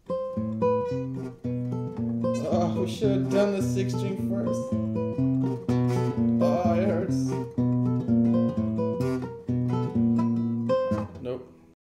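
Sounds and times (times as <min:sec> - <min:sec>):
fingerpicked classical guitar: 0:00.0 - 0:11.8.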